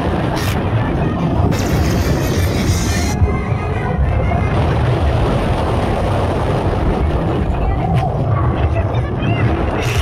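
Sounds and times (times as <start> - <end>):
roller coaster rumbling on track: 0.0 - 10.0
wind buffeting microphone: 0.0 - 10.0.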